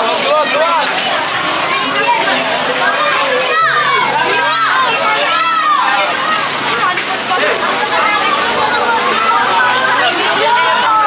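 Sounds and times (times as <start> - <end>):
children calling and shouting: 0.0 - 11.0
crowd of overlapping voices: 0.0 - 11.0.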